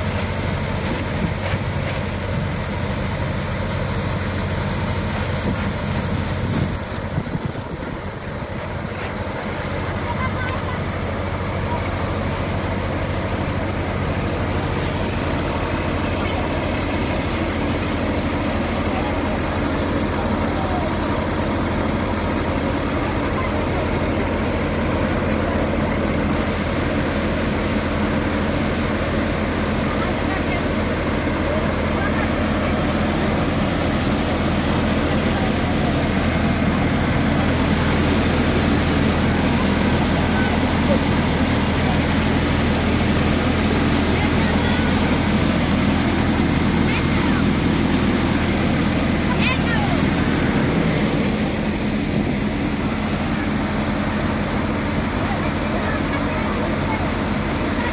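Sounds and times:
thresher machine humming: 0.0 - 57.9.

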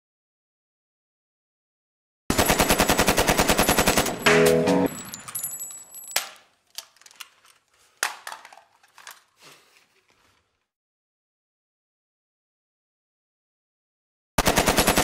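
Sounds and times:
automatic gunfire: 2.3 - 5.3, 14.4 - 15.0
metallic clinks: 4.9 - 7.2.

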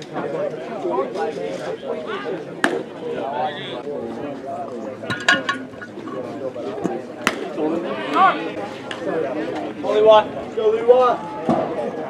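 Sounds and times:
baseball smacking into leather mitt: 7.2 - 7.5.

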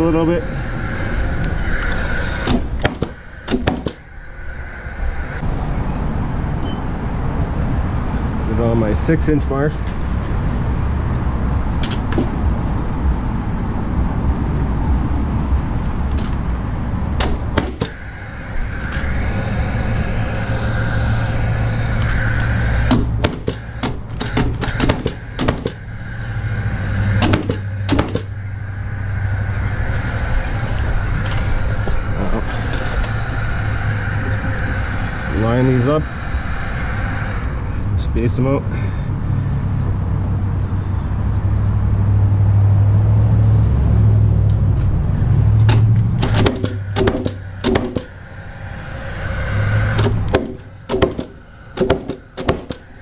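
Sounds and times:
low background hum: 0.0 - 53.0
nail gun shots into wood: 2.5 - 4.0, 17.2 - 18.0, 22.9 - 25.8, 27.2 - 28.3, 45.7 - 48.1, 50.0 - 52.8.

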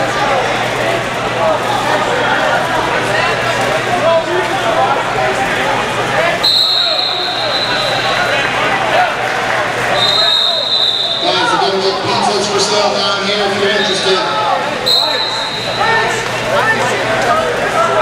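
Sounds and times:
overlapping voices in a gym: 0.0 - 18.0
high-pitched whistle blasts: 6.4 - 8.2, 10.0 - 11.4, 14.9 - 16.0.

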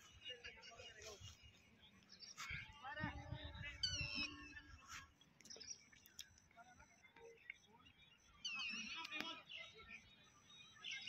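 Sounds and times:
bird chirp: 0.0 - 11.0.

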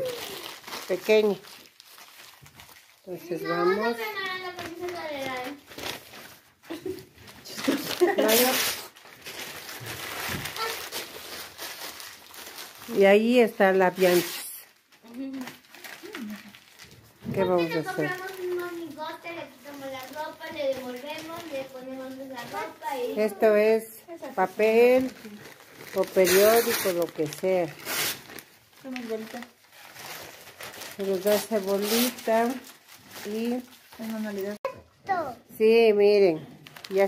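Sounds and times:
cloth and newspaper rustling: 0.0 - 34.8, 35.6 - 37.0.

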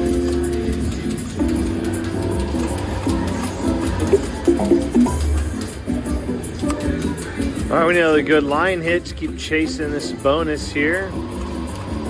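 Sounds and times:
slot machine game music: 0.0 - 7.0.

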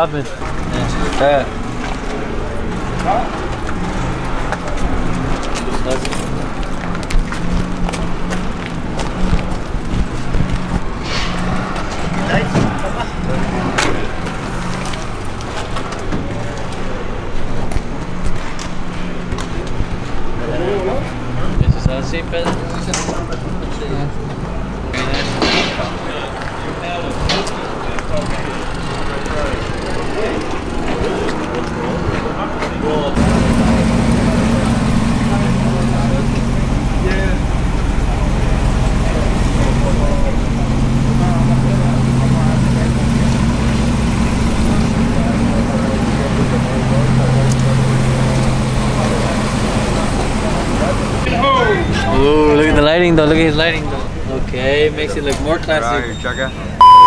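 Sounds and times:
indistinct voices: 0.0 - 57.0
steady low hum: 33.2 - 51.3.

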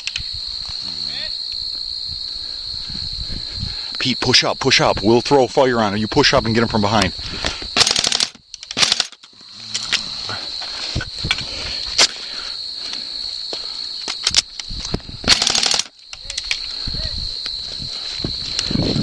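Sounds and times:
crickets chirring: 0.0 - 19.0
airsoft gun bursts: 7.8 - 9.2, 15.3 - 15.9.

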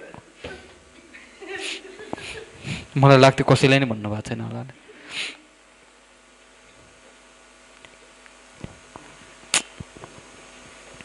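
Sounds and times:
faint steady hum: 0.0 - 11.0
microphone handling crackle: 8.5 - 11.0.

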